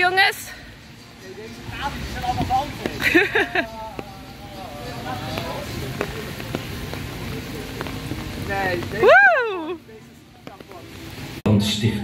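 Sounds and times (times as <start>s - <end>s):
steady rain falling: 0.0s - 11.4s.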